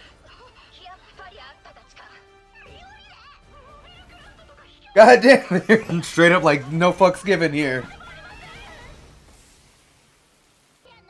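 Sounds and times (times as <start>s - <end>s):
background music: 0.0s - 9.2s
high-pitched dialogue: 5.0s - 7.8s.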